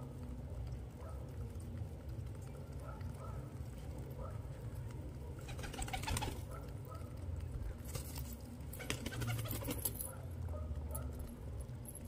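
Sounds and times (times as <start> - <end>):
beaks pecking grain on concrete: 0.0 - 10.1.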